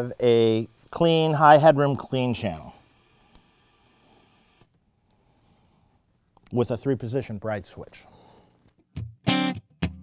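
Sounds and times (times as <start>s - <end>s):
background hiss: 0.0s - 9.5s.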